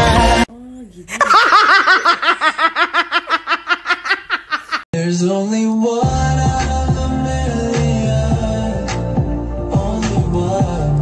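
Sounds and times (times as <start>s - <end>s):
high-pitched laughter: 1.2s - 4.9s.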